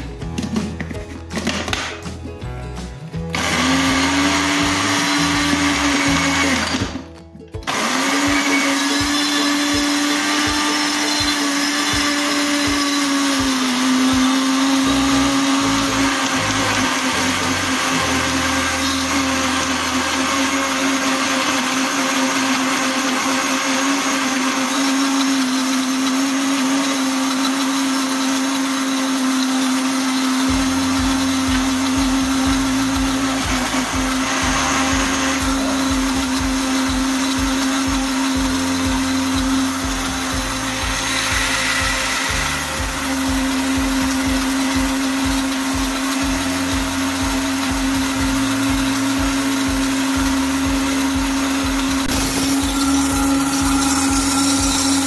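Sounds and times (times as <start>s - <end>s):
blender motor running: 3.2s - 55.0s.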